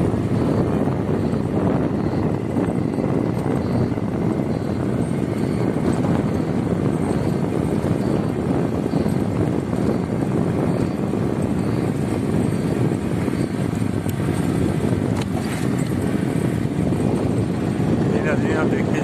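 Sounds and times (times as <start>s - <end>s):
car driving on dirt road: 0.0s - 19.0s
wind noise: 0.0s - 19.0s.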